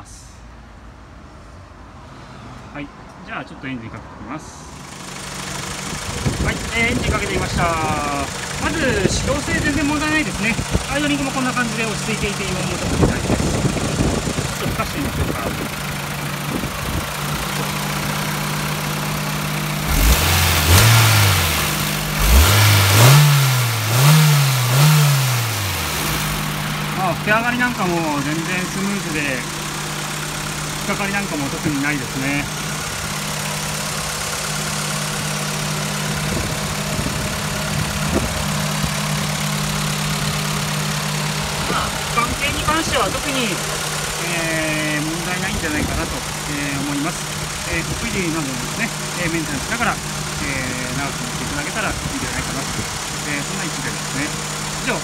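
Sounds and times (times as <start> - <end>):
car engine idling and revving: 4.6 - 55.0.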